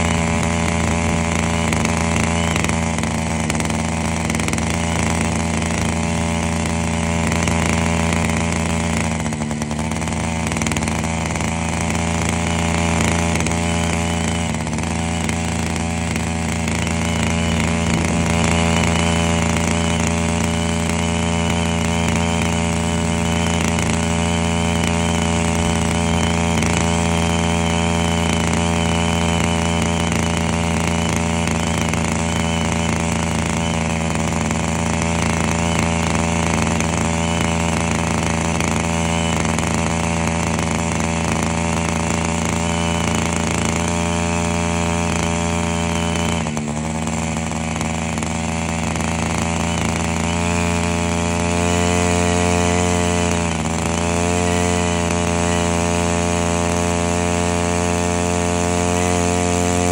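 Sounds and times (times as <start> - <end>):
vacuum truck pump droning: 0.0 - 59.9.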